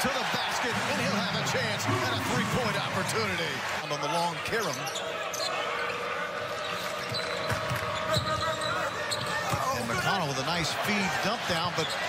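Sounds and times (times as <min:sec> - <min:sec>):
crowd din: 0:00.0 - 0:12.0.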